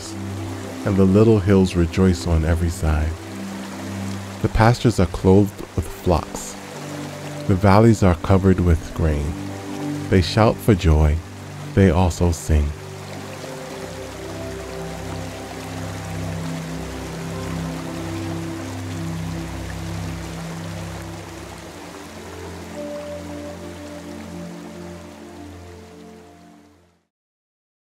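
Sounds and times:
running water hiss: 0:00.0 - 0:26.7
slow held chords music: 0:00.0 - 0:27.0.

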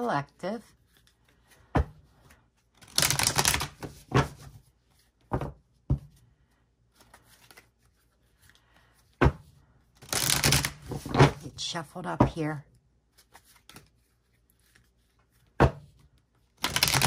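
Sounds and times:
cards riffle-shuffled: 0:02.2 - 0:05.2, 0:06.9 - 0:09.2, 0:10.0 - 0:11.4, 0:13.1 - 0:17.0.

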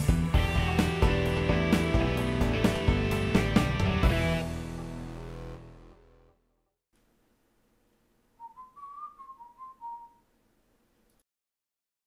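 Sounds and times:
whistled tune: 0:08.4 - 0:10.3.

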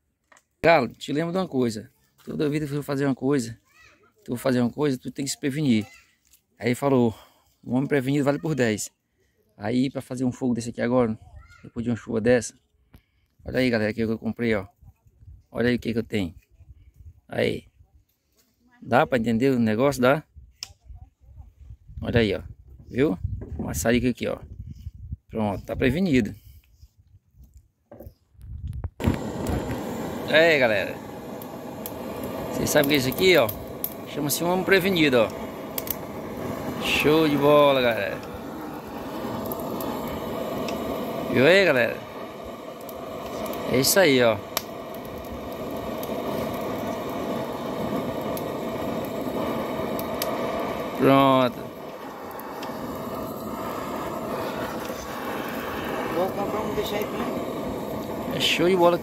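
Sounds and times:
blow torch clicks: 0:29.0 - 0:58.7
blow torch hissing: 0:29.0 - 0:59.0.

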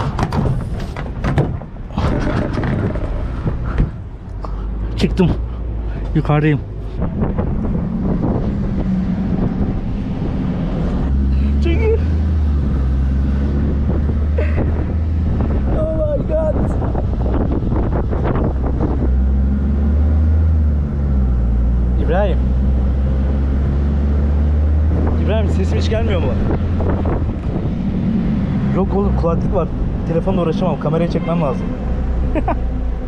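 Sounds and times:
wind buffeting microphone: 0:00.0 - 0:04.4, 0:05.1 - 0:31.1
bus rumbling: 0:00.0 - 0:33.0.

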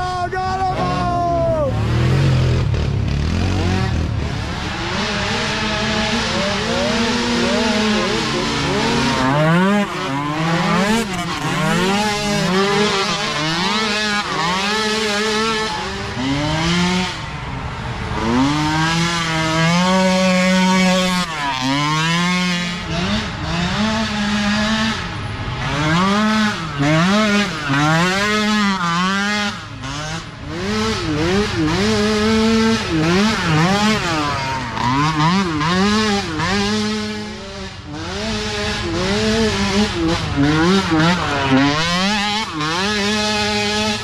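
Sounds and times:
quad engines revving: 0:00.0 - 0:44.0.

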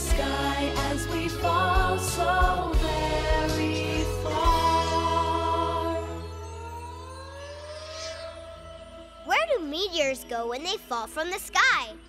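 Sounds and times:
steady low drone: 0:02.7 - 0:09.3
synthesized tone rising in pitch: 0:05.2 - 0:09.4
whoosh: 0:07.1 - 0:09.2.

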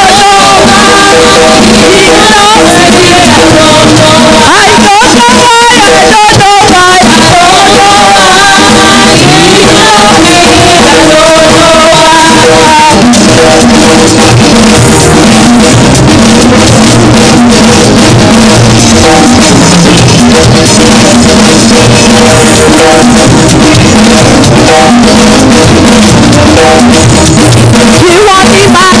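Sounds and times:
drum kit steady beat: 0:00.0 - 0:29.0
live band music: 0:00.0 - 0:29.0.

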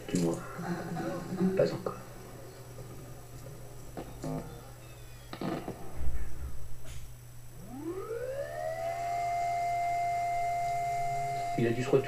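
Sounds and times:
rising high tone: 0:07.6 - 0:11.6.

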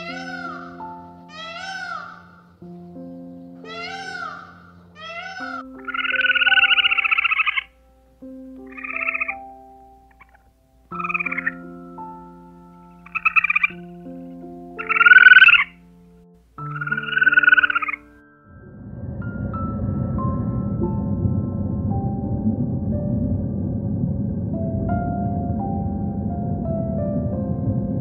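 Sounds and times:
raspy pulsing animal calls: 0:00.0 - 0:02.6, 0:03.6 - 0:07.7, 0:08.7 - 0:09.4, 0:10.1 - 0:11.6, 0:13.0 - 0:15.8, 0:16.7 - 0:18.1
soft background music: 0:00.0 - 0:28.0.

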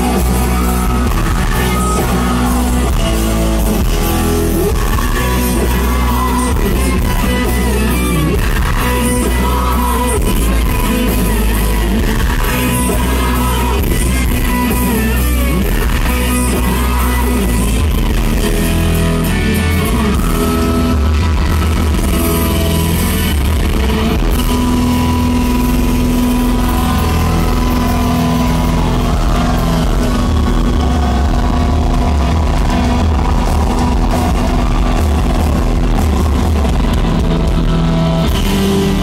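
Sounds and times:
hard rock band playing live: 0:00.0 - 0:39.0.

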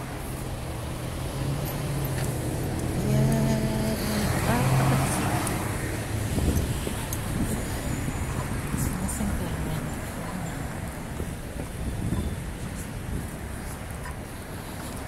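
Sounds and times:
roadway noise: 0:00.0 - 0:15.0
vehicle engine humming: 0:00.0 - 0:15.0.

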